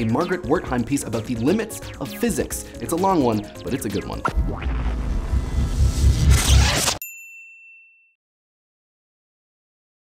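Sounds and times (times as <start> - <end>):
music sting with heavy bass: 3.5 - 7.0
bright clean ding: 7.0 - 8.2.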